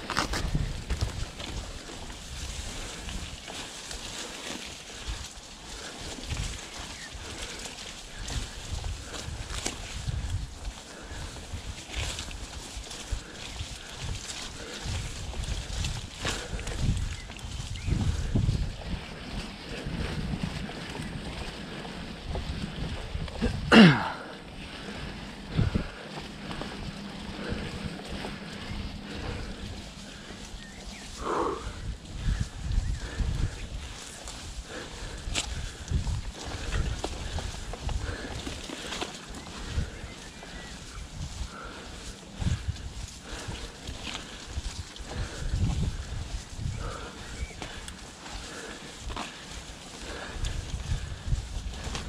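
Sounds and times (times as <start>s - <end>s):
bike tyre noise: 0.0s - 52.0s
faint bike ticks: 0.0s - 52.0s
long grass brushing: 0.0s - 52.0s
low wind rumble on microphone: 0.0s - 52.0s.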